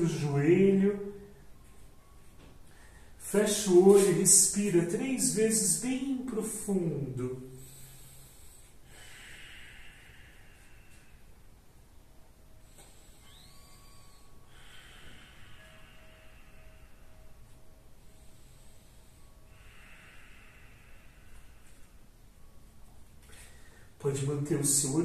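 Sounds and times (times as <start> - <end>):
person breathing deeply: 7.5 - 11.6, 12.6 - 22.6, 23.2 - 24.0.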